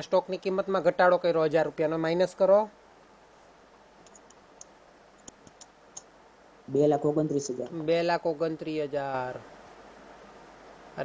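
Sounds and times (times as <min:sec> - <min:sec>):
computer mouse clicks: 0:04.0 - 0:06.1.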